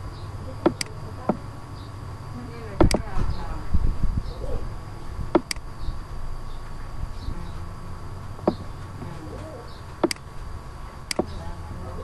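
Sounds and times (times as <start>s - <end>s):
faint steady hum: 0.0s - 12.0s
sharp clicks and knocks: 0.6s - 1.5s, 2.8s - 3.1s, 5.3s - 5.6s, 9.9s - 10.3s, 11.1s - 11.4s.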